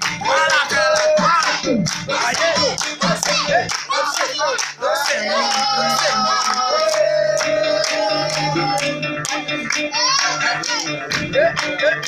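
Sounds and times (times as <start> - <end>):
hand clapping: 0.0 - 12.0
pop song with singing: 0.0 - 12.0.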